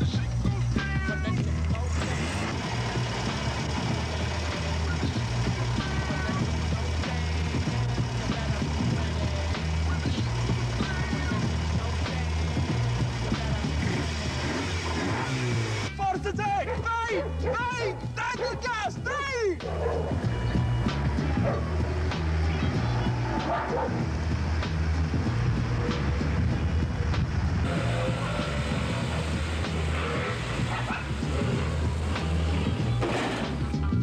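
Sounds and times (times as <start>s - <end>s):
music with repeating bass beat: 0.0s - 34.0s
man calling out: 15.9s - 19.8s.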